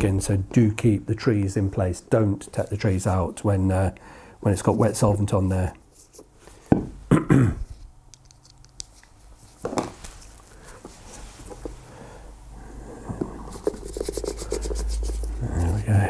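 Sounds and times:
throat clearing: 7.1s - 7.7s
screwdriver tip scratching leather: 13.5s - 15.8s.

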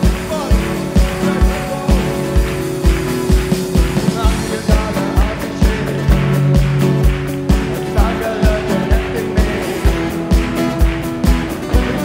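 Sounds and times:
bass guitar: 0.0s - 12.0s
guitar chords: 0.0s - 12.0s.

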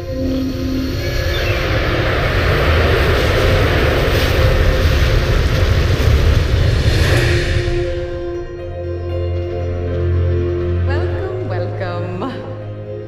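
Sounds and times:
aircraft passing low overhead: 0.0s - 11.0s.

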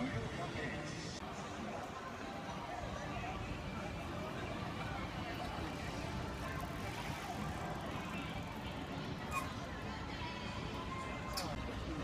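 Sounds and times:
faint voices of passers-by: 0.0s - 12.0s.

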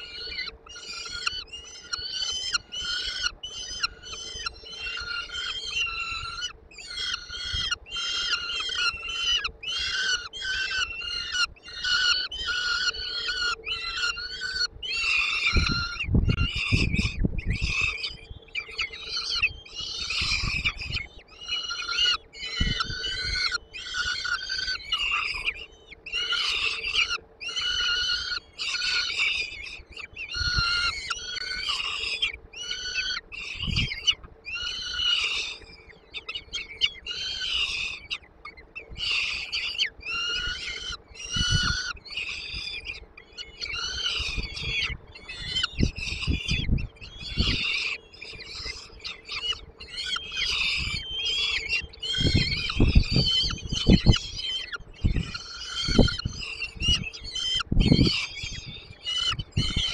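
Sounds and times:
falcon chicks begging calls: 0.0s - 59.9s.

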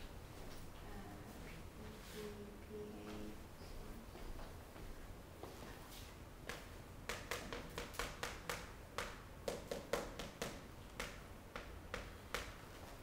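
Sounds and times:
chalk tapping on chalkboard: 6.5s - 12.6s.

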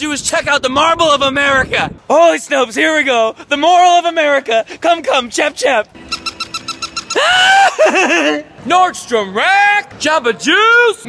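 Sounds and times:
toy dog electronic chirps: 6.0s - 7.2s.

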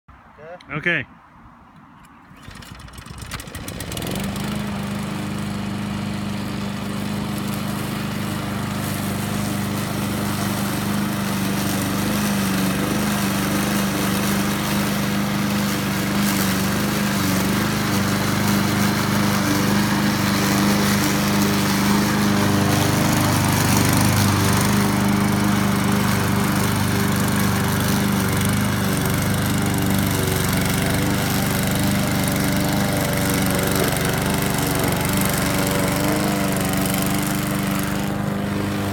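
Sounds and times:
lawn mower engine cutting grass: 2.0s - 38.9s.

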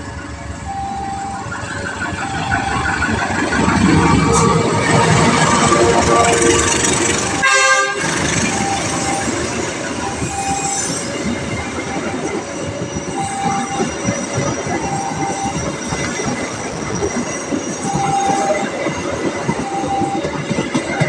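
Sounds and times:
train wheels rumbling on rail: 0.0s - 21.0s
high wheel squeals: 0.7s - 20.4s.

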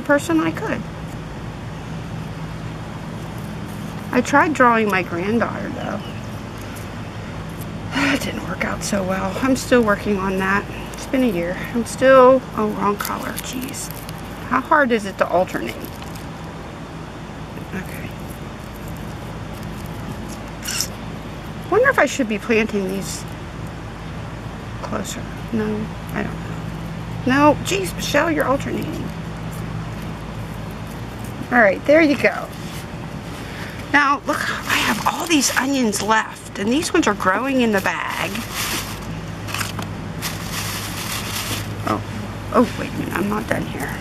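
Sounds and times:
low engine hum: 0.0s - 44.0s
crinkling rustling handling noise: 6.3s - 16.5s, 17.6s - 21.7s, 26.6s - 31.6s, 37.2s - 41.9s
short hissing rustle: 38.4s - 39.6s, 40.2s - 41.8s.

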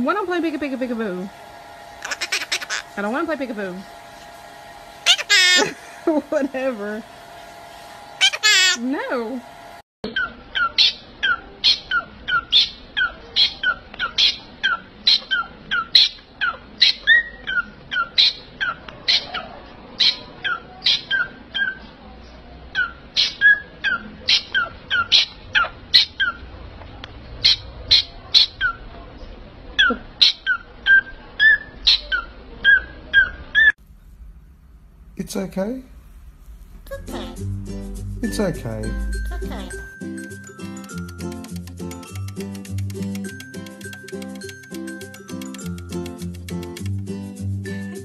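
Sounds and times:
parrot chirping: 2.0s - 3.0s, 5.0s - 5.9s, 8.2s - 8.8s, 10.0s - 21.9s, 22.7s - 26.5s, 27.4s - 28.9s, 29.8s - 33.8s.

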